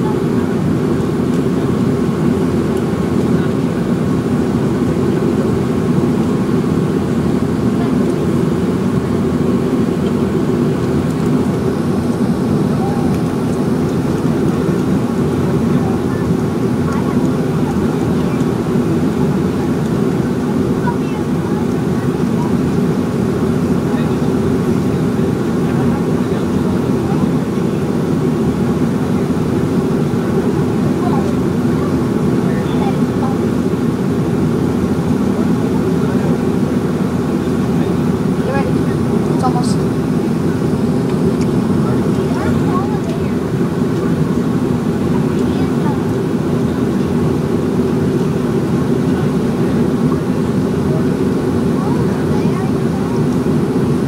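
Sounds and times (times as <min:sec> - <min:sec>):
jet engines humming: 0:00.0 - 0:54.0.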